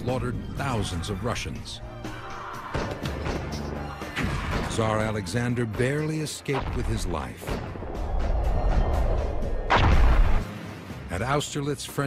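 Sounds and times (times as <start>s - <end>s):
cannon blast: 9.7s - 10.4s.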